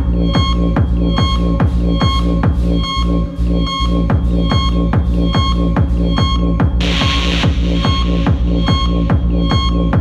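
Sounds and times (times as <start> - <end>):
kick drum: 0.0 - 2.9, 3.9 - 10.0
synth bass: 0.0 - 10.0
held synth tones: 6.8 - 9.1.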